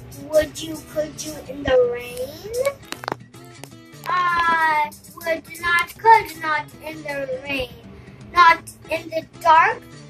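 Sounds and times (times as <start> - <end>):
girl reading aloud in sing-song: 0.2 - 2.8, 4.1 - 9.9.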